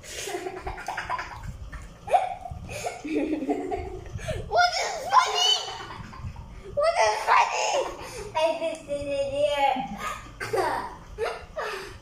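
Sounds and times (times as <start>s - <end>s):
child laughing and giggling: 0.1s - 8.4s, 10.0s - 12.0s.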